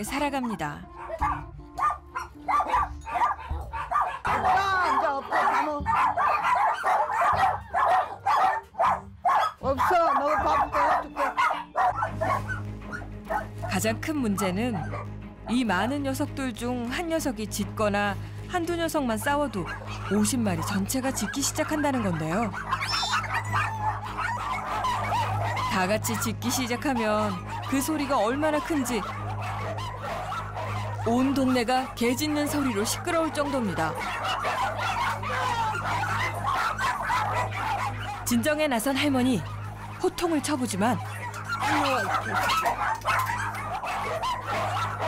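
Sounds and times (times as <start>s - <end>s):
dogs barking and yipping: 0.0s - 15.6s, 18.2s - 45.0s.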